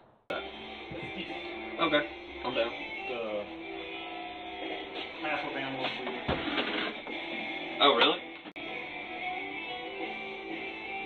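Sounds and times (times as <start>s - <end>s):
background music: 0.3s - 11.0s.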